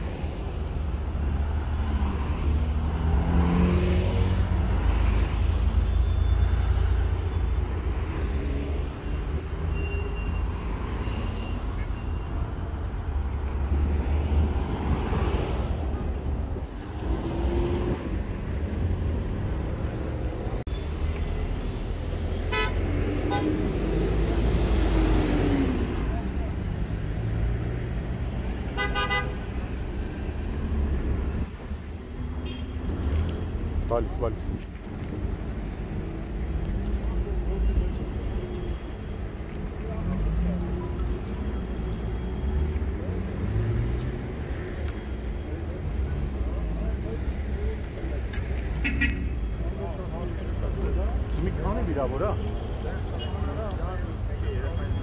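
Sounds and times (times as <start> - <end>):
car engines rumbling: 0.0 - 55.0.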